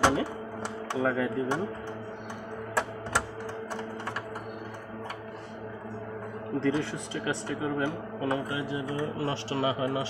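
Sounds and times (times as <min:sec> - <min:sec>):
clicks and taps of hands on parts: 0:00.0 - 0:05.2
steady hum: 0:00.0 - 0:10.0.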